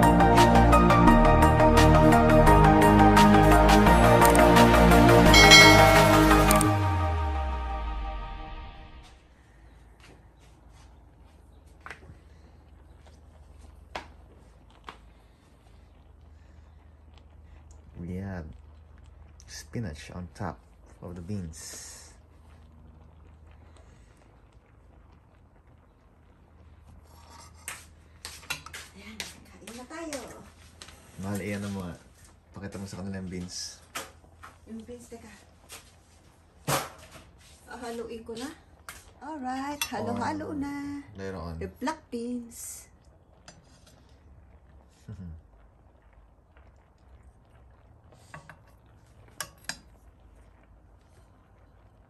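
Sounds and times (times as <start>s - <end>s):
metal spoon clinking on pot: 5.4s - 6.4s
metal spoon scraping pan: 27.0s - 29.4s.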